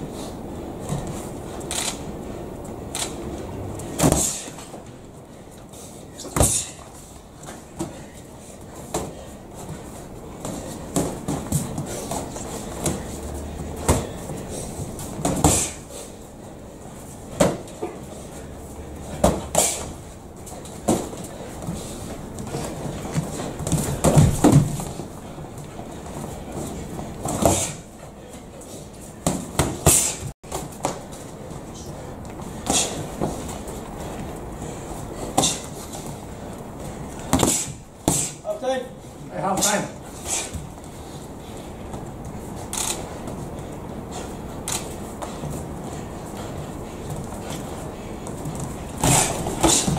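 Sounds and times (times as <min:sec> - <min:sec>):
boxing gloves smacking: 0:03.8 - 0:04.9, 0:08.7 - 0:16.0, 0:17.3 - 0:17.9, 0:19.1 - 0:27.8, 0:29.2 - 0:31.2, 0:35.2 - 0:36.2, 0:37.1 - 0:38.4, 0:44.6 - 0:49.9.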